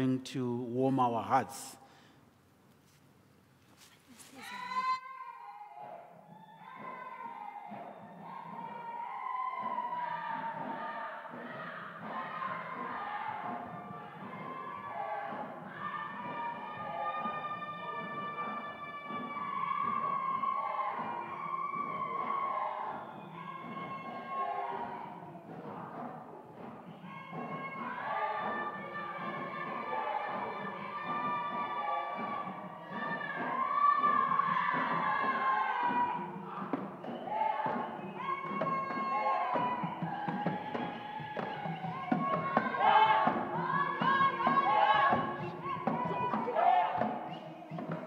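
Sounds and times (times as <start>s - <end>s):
group singing and chanting: 4.3s - 48.0s.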